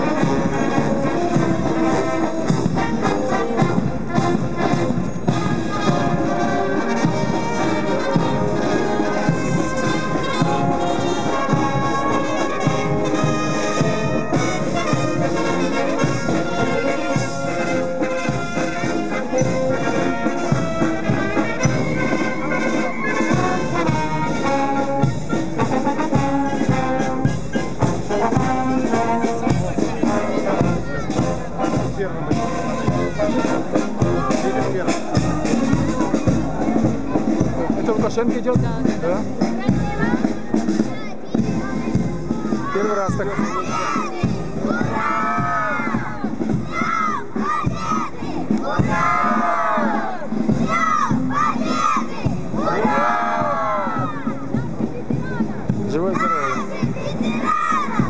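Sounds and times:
marching brass band playing: 0:00.0 - 0:58.0.

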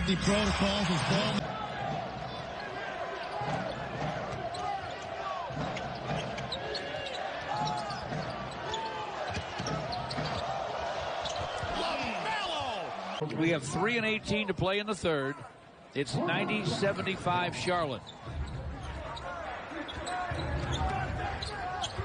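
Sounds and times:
sneakers squeaking: 0:02.4 - 0:12.0, 0:18.0 - 0:22.0.

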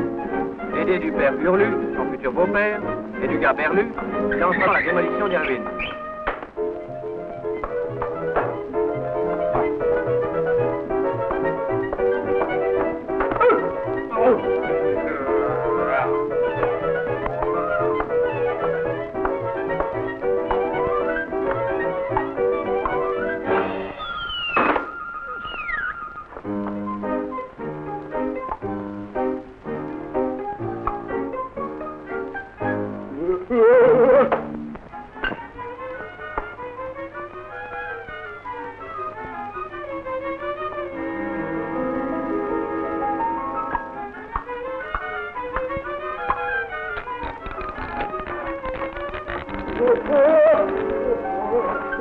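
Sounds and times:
bowed string melody: 0:00.0 - 0:52.0
cartoon orchestral music: 0:00.0 - 0:52.0
falling pitch slides: 0:23.0 - 0:26.5.

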